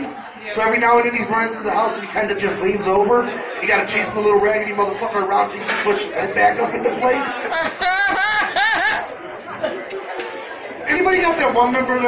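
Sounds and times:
audience voices and chatter: 0:00.0 - 0:12.0.

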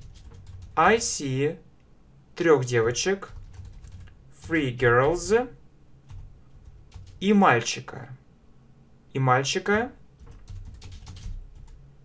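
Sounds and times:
computer keyboard typing: 0:00.0 - 0:01.1, 0:02.8 - 0:05.4, 0:06.1 - 0:07.2, 0:10.2 - 0:11.8.

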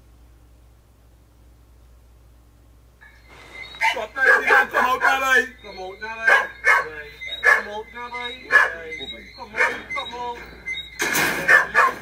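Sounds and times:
dog barking: 0:03.8 - 0:05.5, 0:06.2 - 0:10.0, 0:11.4 - 0:12.0
man talking: 0:03.8 - 0:10.6, 0:11.3 - 0:12.0.

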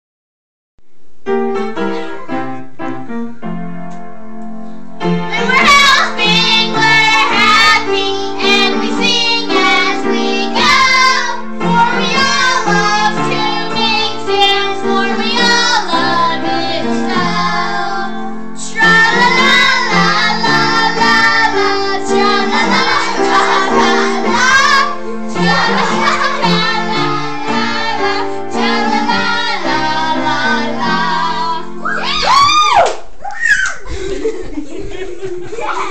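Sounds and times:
upright piano accompaniment: 0:01.1 - 0:32.6
girls singing together: 0:05.3 - 0:32.2.

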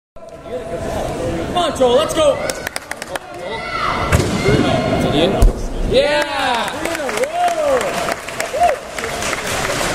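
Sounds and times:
spectators' voices: 0:00.2 - 0:09.9.

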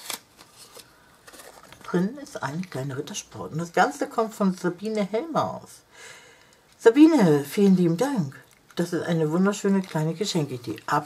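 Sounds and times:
cardstock rustling and scraping: 0:00.0 - 0:02.8.

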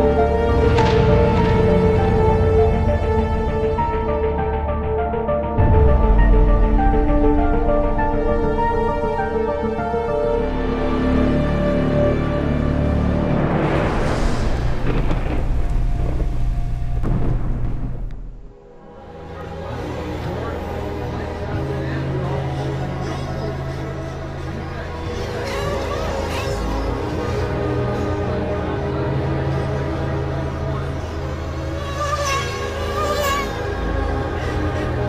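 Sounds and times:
background music: 0:00.0 - 0:35.0
thunder rumble: 0:00.4 - 0:04.0, 0:13.1 - 0:18.9
rc car engines revving: 0:31.6 - 0:33.7.

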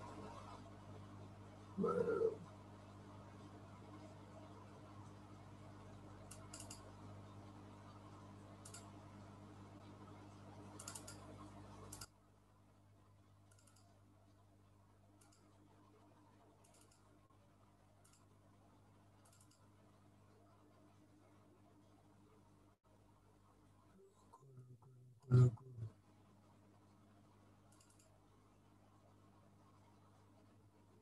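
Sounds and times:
low steady hum: 0:00.0 - 0:31.0
computer mouse clicking: 0:06.2 - 0:07.0, 0:08.6 - 0:09.0, 0:10.8 - 0:12.2, 0:13.5 - 0:14.0, 0:15.2 - 0:15.6, 0:16.6 - 0:17.1, 0:18.0 - 0:18.3, 0:19.2 - 0:19.7, 0:27.7 - 0:28.2.

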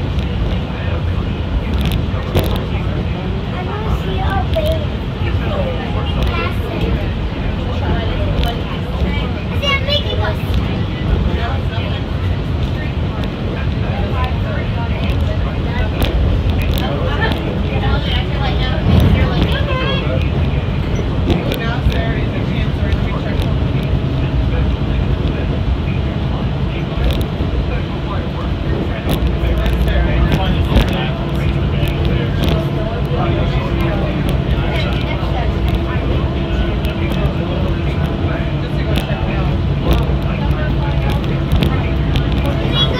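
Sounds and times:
passenger chatter: 0:00.0 - 0:42.9
train low rumble: 0:00.0 - 0:42.9.

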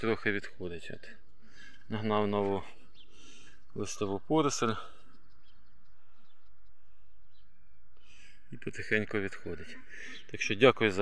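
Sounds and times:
faint bird chirps: 0:01.1 - 0:11.0.

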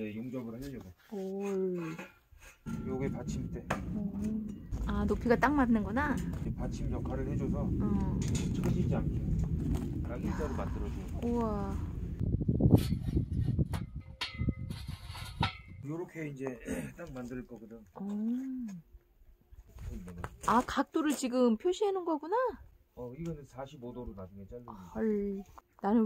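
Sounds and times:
sharp metallic clanks ringing: 0:02.6 - 0:05.8
metal knocks and rattles: 0:02.6 - 0:10.4, 0:12.8 - 0:15.9
low rumbling noise: 0:02.7 - 0:14.9.

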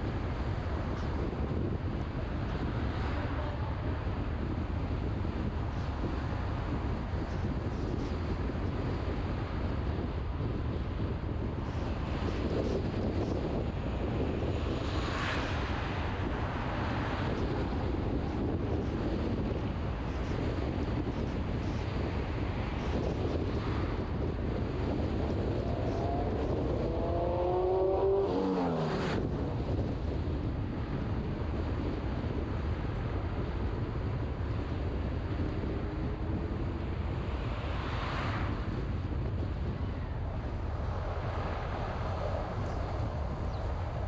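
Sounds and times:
car road and wind noise: 0:00.0 - 0:44.0
motorcycle passing by: 0:25.5 - 0:29.6.

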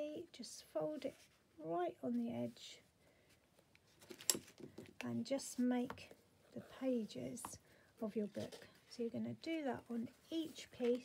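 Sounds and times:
cardstock rustling and scratching: 0:08.0 - 0:11.0.

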